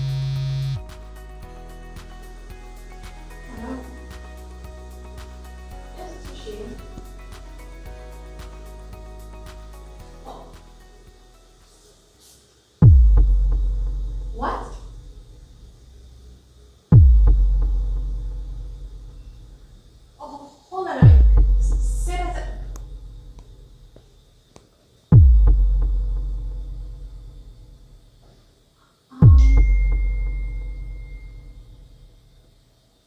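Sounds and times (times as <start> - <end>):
deep bass boom: 12.8 - 15.0, 16.9 - 18.8, 21.0 - 23.2, 25.1 - 27.4, 29.2 - 30.8
thin high tone ringing: 29.3 - 32.3.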